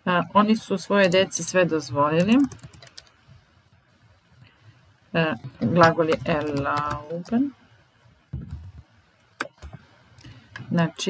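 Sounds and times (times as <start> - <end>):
woman speaking: 0.0 - 2.6, 5.1 - 7.6, 10.7 - 11.0.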